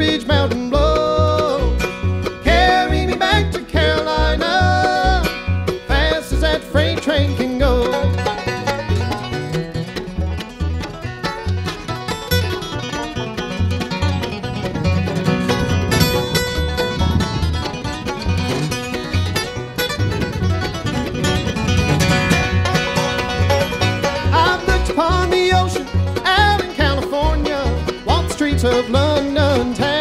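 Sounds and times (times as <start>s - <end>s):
acoustic guitar: 0.0s - 30.0s
banjo: 0.0s - 30.0s
mandolin: 0.0s - 30.0s
upright bass: 0.0s - 30.0s.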